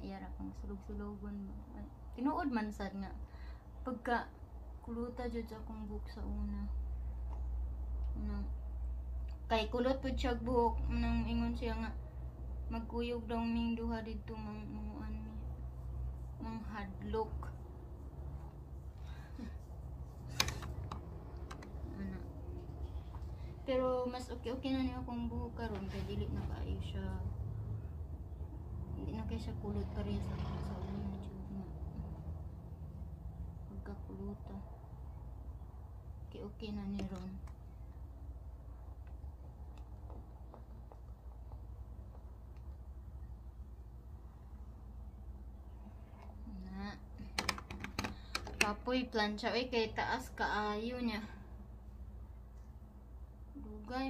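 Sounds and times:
low steady hum: 0:00.0 - 0:54.0
sharp light clicks and taps: 0:20.2 - 0:21.9, 0:47.2 - 0:48.8
hair-styling tools clicking: 0:20.3 - 0:21.8.

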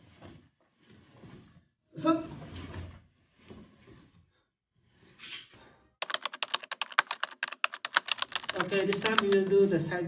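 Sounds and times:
keyboard typing clicks: 0:06.0 - 0:09.5.

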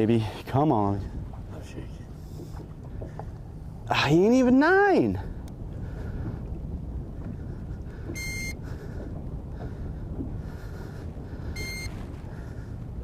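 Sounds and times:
low wind noise: 0:00.0 - 0:13.0
short electronic beeps: 0:08.2 - 0:08.6, 0:11.6 - 0:12.0.

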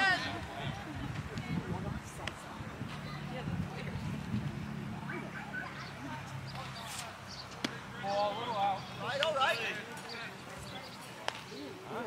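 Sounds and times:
voices calling out: 0:00.0 - 0:12.0
baseball impact knock: 0:07.6 - 0:07.8.

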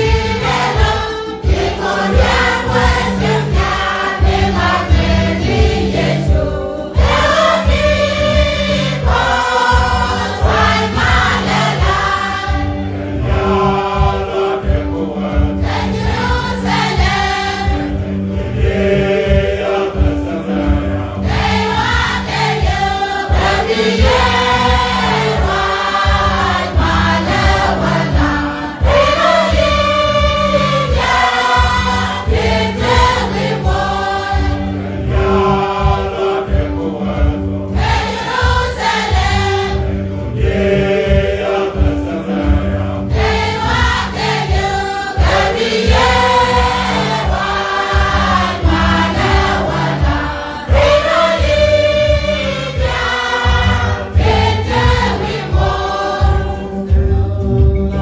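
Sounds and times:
choir singing a hymn: 0:00.0 - 0:58.0
low accompaniment: 0:00.0 - 0:58.0.

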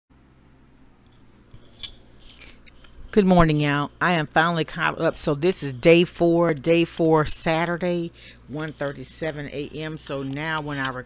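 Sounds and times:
low steady hum: 0:00.2 - 0:11.0.

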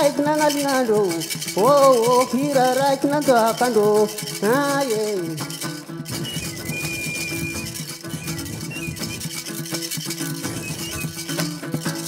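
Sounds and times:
box guitar plucked: 0:00.1 - 0:12.0.

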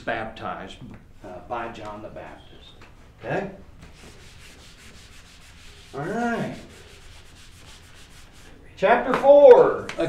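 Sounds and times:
eraser rubbing on whiteboard: 0:03.8 - 0:08.6.

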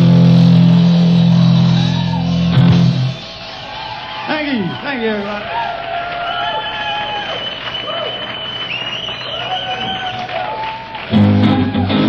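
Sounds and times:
rock band sustained chord: 0:00.0 - 0:03.2.

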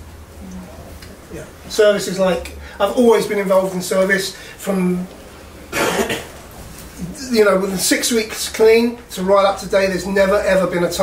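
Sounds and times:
man coughing: 0:05.7 - 0:06.3.

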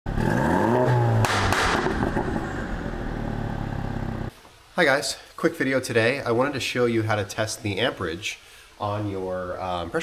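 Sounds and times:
engine revving up: 0:00.1 - 0:04.3
sharp hit: 0:01.1 - 0:03.3.

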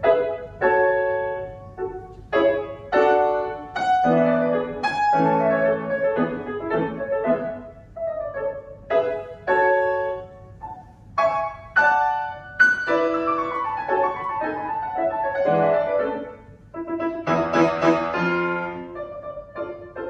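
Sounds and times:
solo grand piano: 0:00.0 - 0:20.0.

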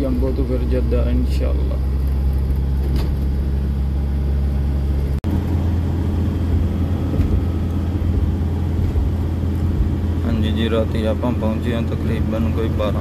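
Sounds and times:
truck engine and road noise: 0:00.0 - 0:13.0.

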